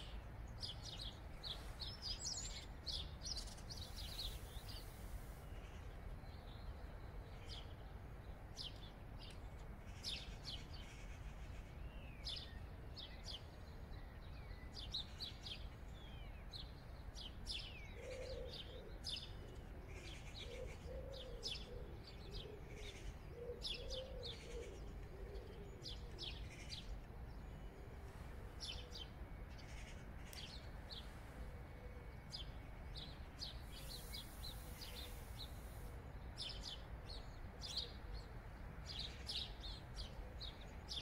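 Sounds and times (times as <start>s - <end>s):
small birds chirping: 0.0s - 6.7s, 32.2s - 41.0s.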